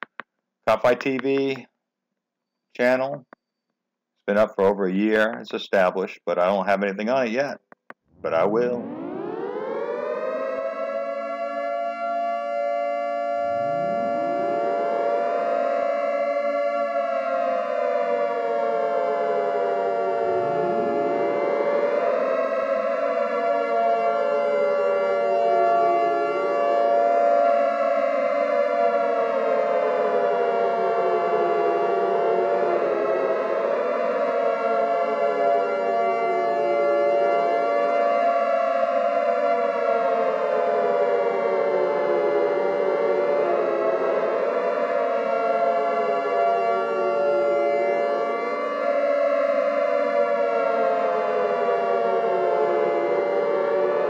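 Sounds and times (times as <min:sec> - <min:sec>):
air raid siren wailing: 0:08.2 - 0:54.0.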